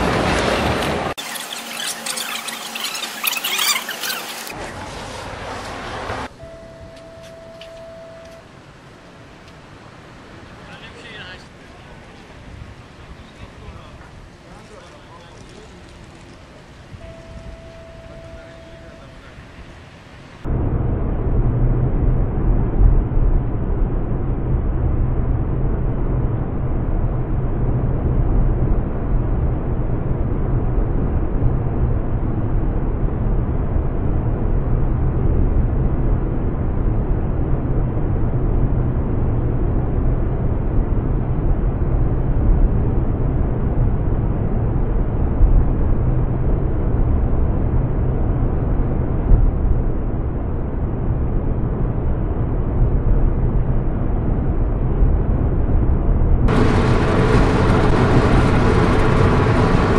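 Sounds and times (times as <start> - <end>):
car road noise on freeway: 21.8 - 59.9.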